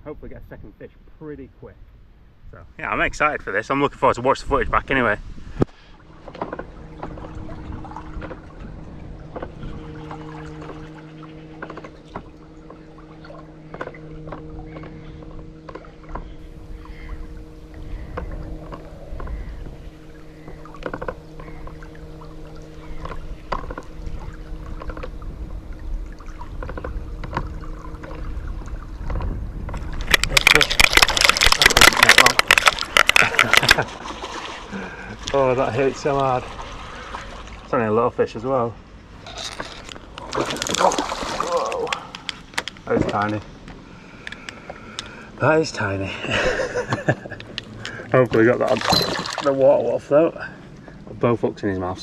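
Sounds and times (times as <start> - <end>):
electric motor humming: 6.0 - 33.8
fishing reel drag ratcheting: 29.0 - 33.8, 39.2 - 40.8.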